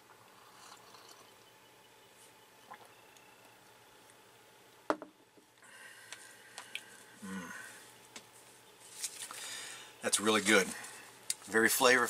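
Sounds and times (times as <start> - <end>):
mouth sounds: 7.2 - 7.8
soft rustling: 8.0 - 9.4.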